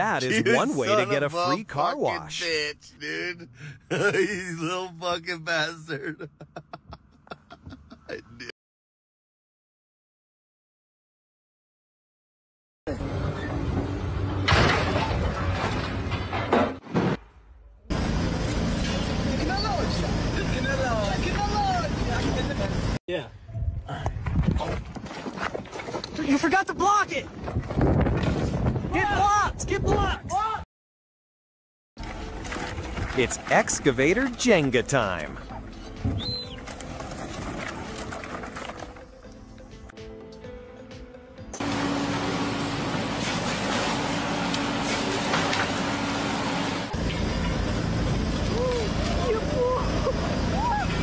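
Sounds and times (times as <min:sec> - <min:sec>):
wooden pallets clattering: 0:14.5 - 0:17.2, 0:36.0 - 0:39.4.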